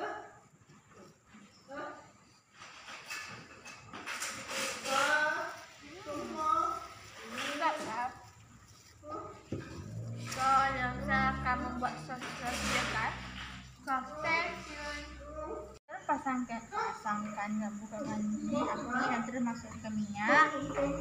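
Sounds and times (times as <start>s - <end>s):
indistinct voices talking: 9.0s - 21.0s.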